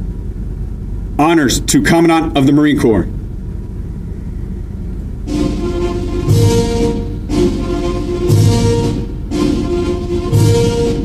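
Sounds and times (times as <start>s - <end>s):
low room rumble: 0.0s - 11.0s.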